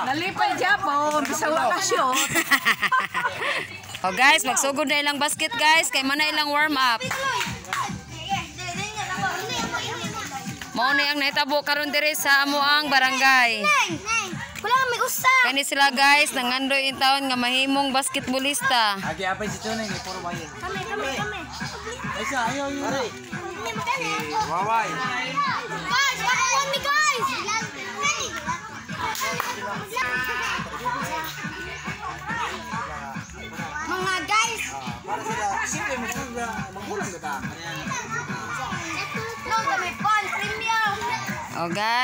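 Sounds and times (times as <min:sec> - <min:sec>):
children shouting and chattering: 0:00.0 - 0:42.0
children calling out: 0:23.6 - 0:35.4, 0:37.7 - 0:41.5.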